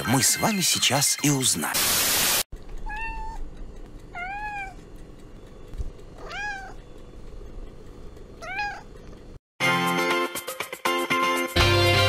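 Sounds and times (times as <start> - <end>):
cat meowing: 2.8 - 3.4, 4.1 - 4.8, 6.2 - 6.8, 8.4 - 8.9.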